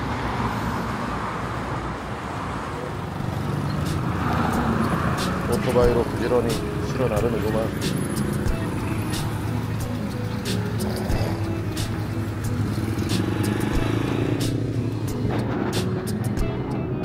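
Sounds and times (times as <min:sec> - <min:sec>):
street traffic: 0:00.0 - 0:17.0
background music: 0:03.1 - 0:17.0
motor scooter engine running: 0:03.2 - 0:15.0.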